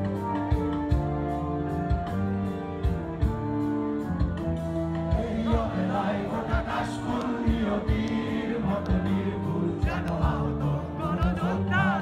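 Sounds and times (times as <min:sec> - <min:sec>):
electric guitars: 0:00.0 - 0:12.0
keyboard: 0:00.0 - 0:12.0
crowd singing along: 0:05.0 - 0:12.0
drum beat: 0:05.1 - 0:09.2.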